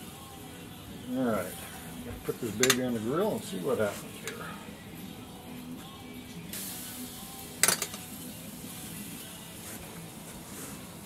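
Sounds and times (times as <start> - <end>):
faint music: 0.0 - 11.0
grill sizzling: 0.0 - 11.0
metallic utensil clink: 7.6 - 8.0.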